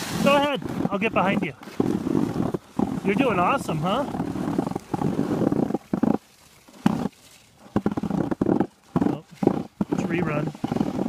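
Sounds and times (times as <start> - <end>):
skis scraping over snow: 0.0 - 11.0.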